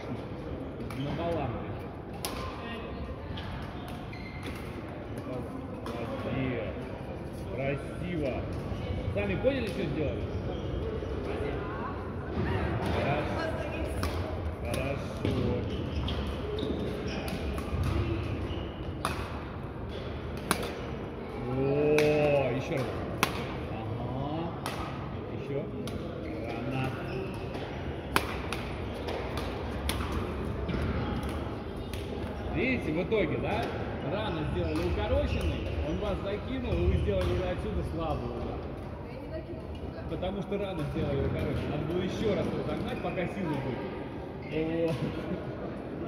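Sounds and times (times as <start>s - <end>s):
background chatter of players: 0.0s - 46.0s
badminton rackets striking shuttlecocks: 14.0s - 14.8s, 16.1s - 21.0s, 21.8s - 23.6s, 24.6s - 25.0s, 26.8s - 32.4s.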